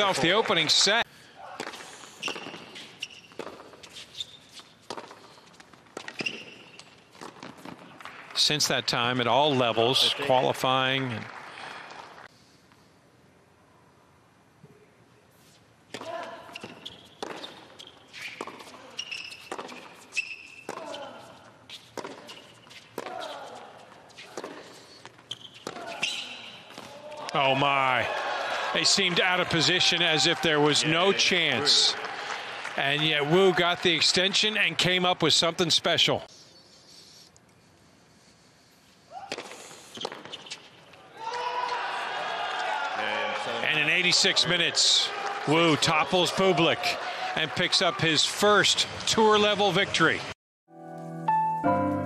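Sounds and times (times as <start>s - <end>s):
shoe squeaks: 2.1s - 7.2s, 16.3s - 26.9s, 39.2s - 40.9s
racket striking tennis ball: 3.3s - 3.8s, 19.4s - 20.0s, 21.9s - 23.3s
loud celebratory shout: 27.2s - 32.5s, 41.2s - 43.7s, 45.0s - 48.0s
crowd cheering and applauding: 27.3s - 35.0s, 41.7s - 50.3s.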